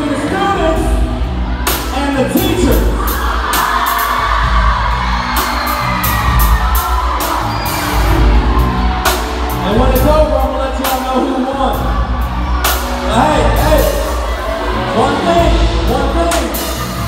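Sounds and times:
bass line: 0.0s - 17.0s.

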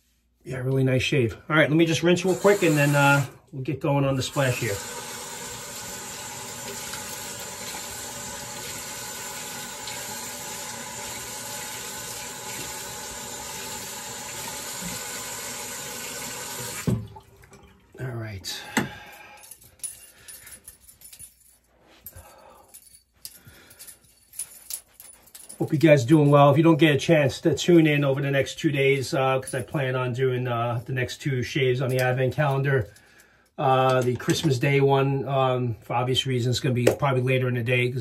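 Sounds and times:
tap water running into sink: 2.3s - 3.3s, 4.3s - 18.0s
small scattered sounds: 19.2s - 25.9s.

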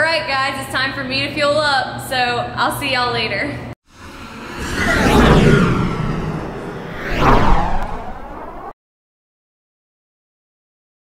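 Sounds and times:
whoosh sound effects: 3.9s - 8.8s.

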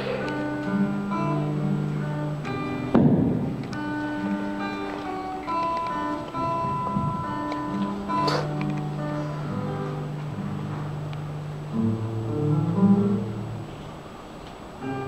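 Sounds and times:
acoustic guitar slow song: 0.0s - 15.0s
loud thump: 2.9s - 3.6s.

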